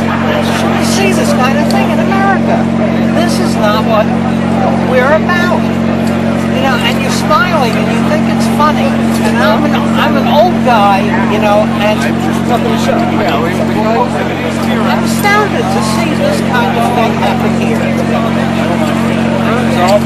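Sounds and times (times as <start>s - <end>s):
low mechanical hum: 0.0s - 20.0s
men talking: 0.0s - 20.0s.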